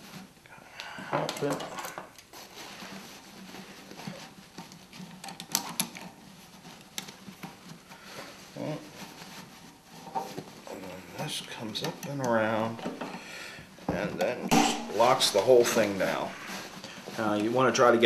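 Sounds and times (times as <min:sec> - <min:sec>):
cloth filter bag rustling: 0:02.3 - 0:12.8, 0:14.8 - 0:18.0.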